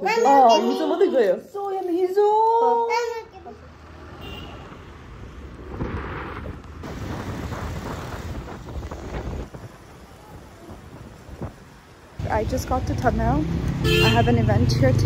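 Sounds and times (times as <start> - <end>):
road and traffic noise: 0.0 - 15.0
wind buffeting microphone: 5.3 - 13.8.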